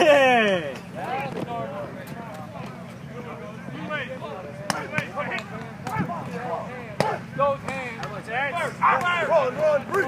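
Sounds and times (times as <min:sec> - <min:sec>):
players chattering and calling: 0:00.0 - 0:10.0.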